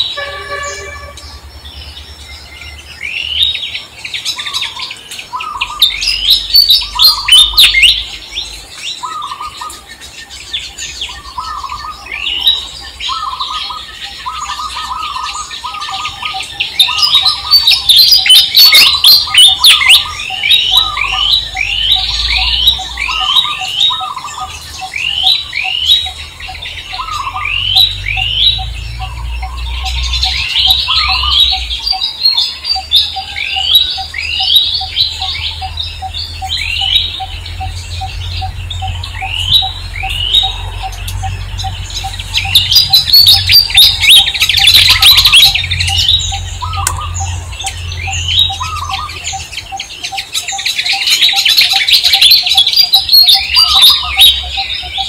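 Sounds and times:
birds chirping in chorus: 0.0 - 55.0
low rumble: 34.1 - 49.7.

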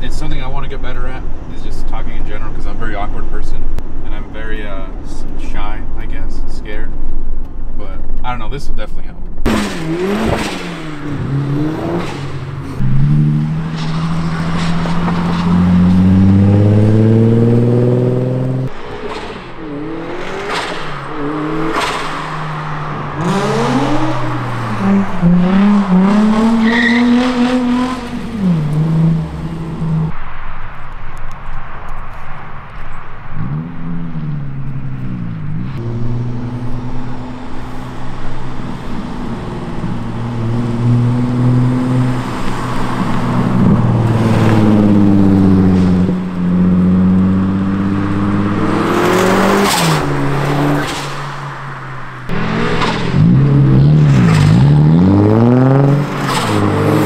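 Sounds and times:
car engines revving: 0.0 - 57.0
tyre squeal: 26.4 - 27.4.

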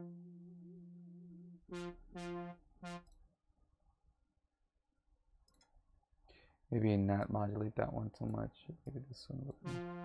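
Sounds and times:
synthesizer low note with vibrato: 0.0 - 3.2, 9.5 - 10.0.

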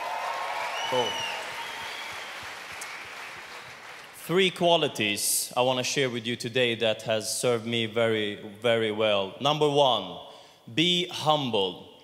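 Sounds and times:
audience applauding: 0.0 - 4.2
whistle from crowd: 0.6 - 2.5.

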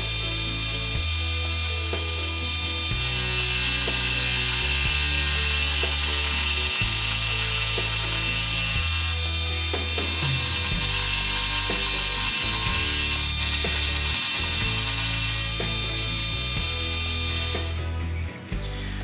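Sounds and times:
milling machine cutting metal: 0.0 - 17.8
background music: 0.0 - 19.0.

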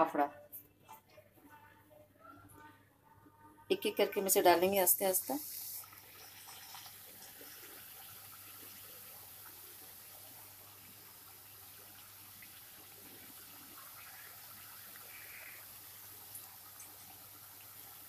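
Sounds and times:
food sizzling in hot oil: 4.4 - 18.0.

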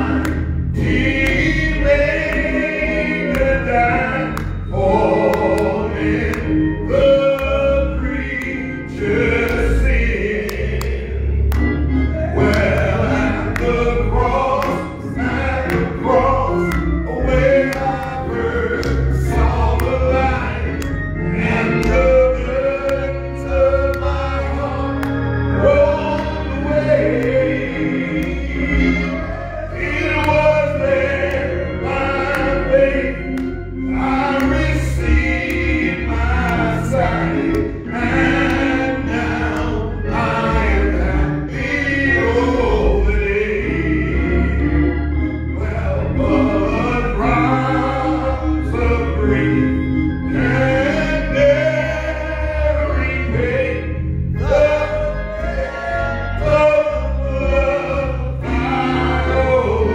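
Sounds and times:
man singing gospel into a microphone: 0.0 - 11.3, 11.9 - 44.7, 45.5 - 59.9
keyboard: 0.0 - 59.9
low bass line: 0.0 - 59.9
man singing into microphone: 56.4 - 59.9.

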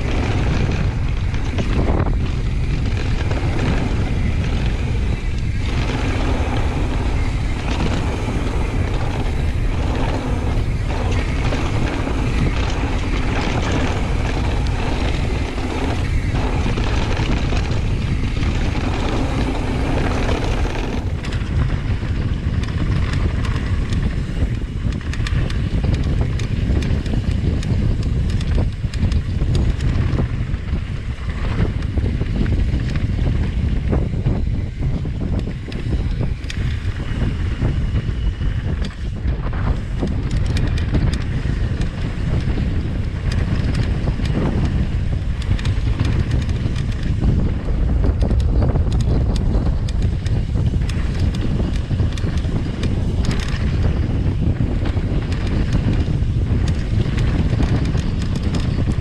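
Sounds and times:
bike chain and parts clattering: 0.0 - 59.0
tyres rumbling on dirt: 0.0 - 59.0
wind buffeting microphone: 0.0 - 59.0.

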